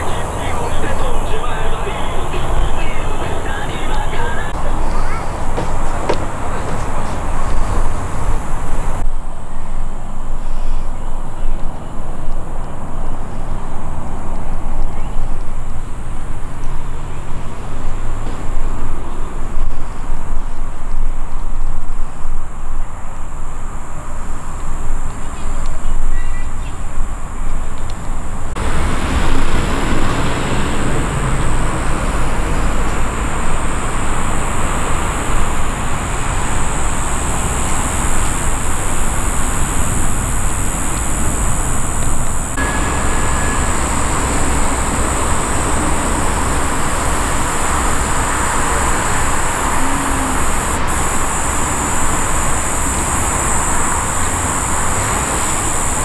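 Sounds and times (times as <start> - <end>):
outdoor background hiss and rumble: 0.0 - 56.0.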